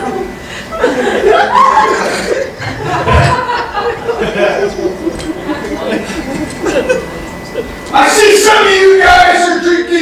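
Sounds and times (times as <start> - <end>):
audience laughing: 0.0 - 7.9.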